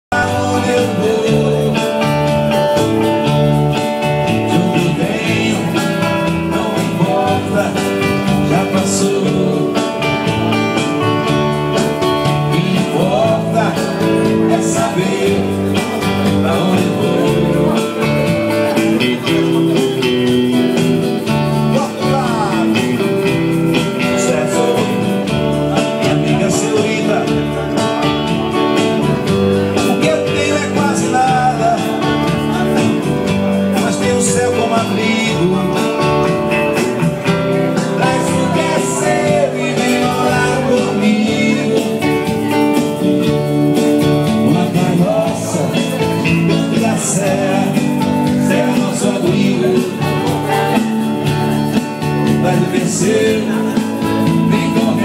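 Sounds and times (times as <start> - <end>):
electric bass and guitar: 0.0 - 55.0
man singing into a microphone: 0.0 - 55.0.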